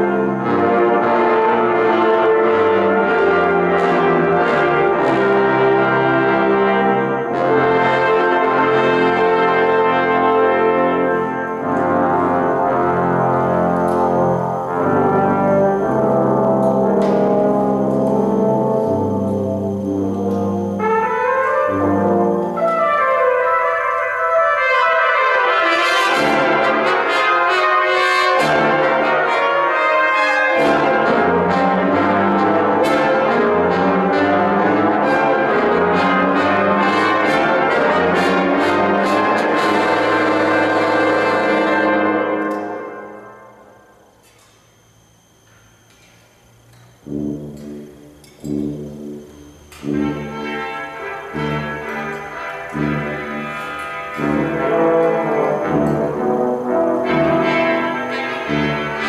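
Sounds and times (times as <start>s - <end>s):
brass choir playing chords: 0.0s - 45.0s, 45.9s - 59.0s.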